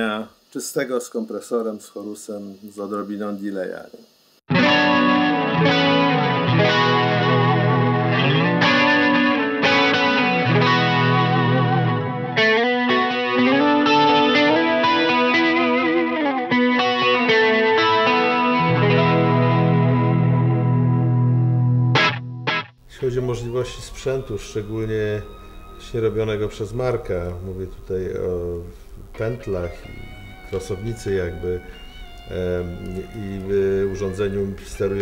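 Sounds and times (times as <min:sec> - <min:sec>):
clean electric guitar: 0:04.5 - 0:35.0.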